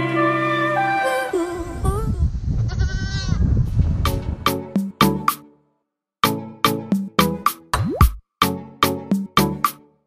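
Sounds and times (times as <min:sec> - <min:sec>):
goat bleating: 0:02.7 - 0:03.4.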